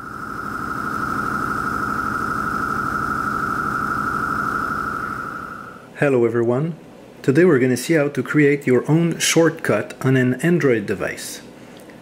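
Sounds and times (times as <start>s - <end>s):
low rumbling drone: 0.0s - 5.9s
steady high synth tone: 0.0s - 5.9s.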